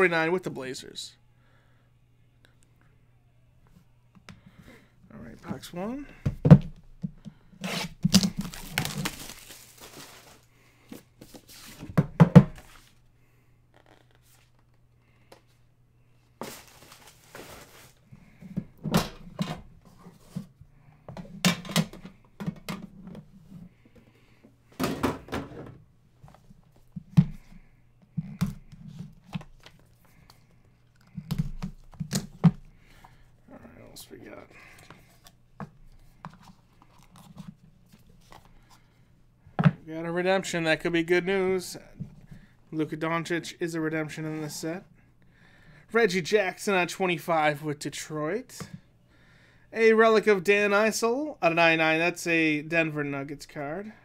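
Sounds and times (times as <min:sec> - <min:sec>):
cardboard tearing: 0:07.6 - 0:10.5.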